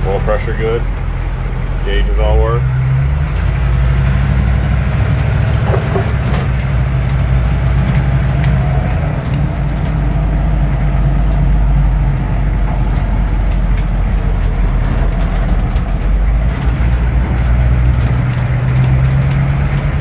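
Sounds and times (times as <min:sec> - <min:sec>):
diesel engine droning: 0:00.0 - 0:20.0.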